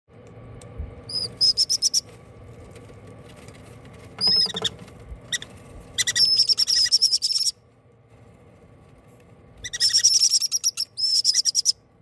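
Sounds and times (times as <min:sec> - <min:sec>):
faint steady hum: 0:00.1 - 0:12.0
parrot chicks peeping: 0:01.0 - 0:02.9, 0:03.5 - 0:07.6, 0:09.6 - 0:11.8.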